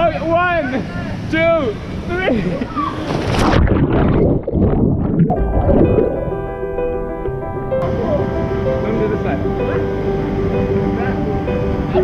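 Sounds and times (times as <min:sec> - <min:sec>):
rushing water: 0:02.9 - 0:06.5
background music of held notes: 0:05.3 - 0:12.0.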